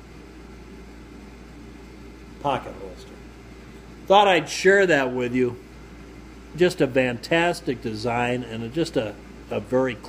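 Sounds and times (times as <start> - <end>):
low room hum with hiss: 0.0 - 10.0.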